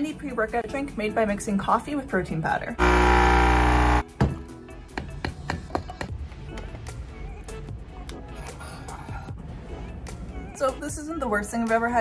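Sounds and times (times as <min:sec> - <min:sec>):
espresso machine pump buzzing: 0:02.8 - 0:04.0.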